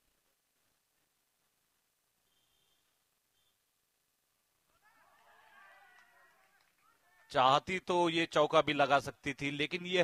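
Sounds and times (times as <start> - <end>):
faint high-pitched chirp: 2.2 - 3.7.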